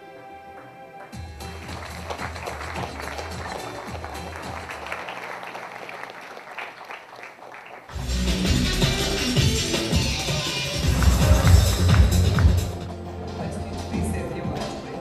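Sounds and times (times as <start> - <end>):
background music: 0.0 - 6.3, 7.9 - 15.0
audience applause: 1.0 - 8.0, 10.7 - 12.9
loud music with bass beat: 7.9 - 12.9.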